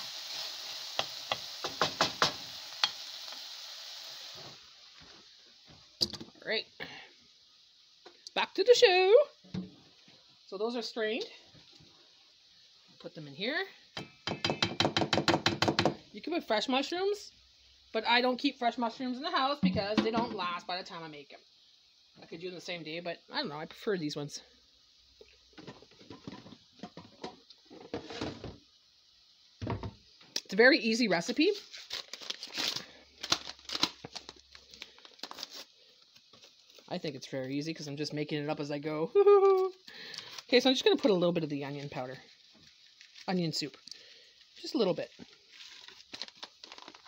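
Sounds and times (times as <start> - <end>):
paper packet crinkling: 31.5 - 37.0, 42.3 - 43.8, 45.0 - 47.0.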